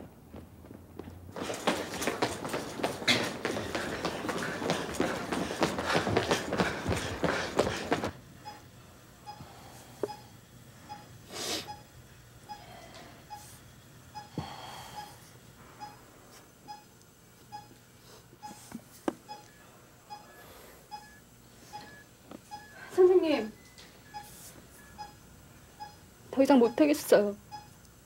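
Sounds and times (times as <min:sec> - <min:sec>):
heart monitor beeping: 0:01.4 - 0:16.0, 0:16.6 - 0:16.9, 0:17.5 - 0:17.8, 0:18.4 - 0:25.2, 0:25.8 - 0:27.8.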